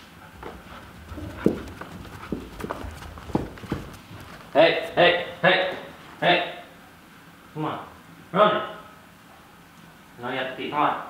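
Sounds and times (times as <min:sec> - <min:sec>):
footsteps on carpeted stairs: 0:00.0 - 0:05.8.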